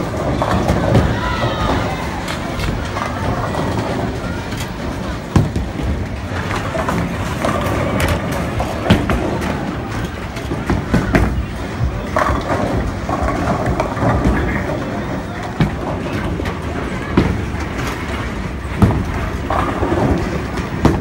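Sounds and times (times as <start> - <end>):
bowling balls rolling: 0.0 - 21.0
bowling pins clattering: 0.0 - 21.0.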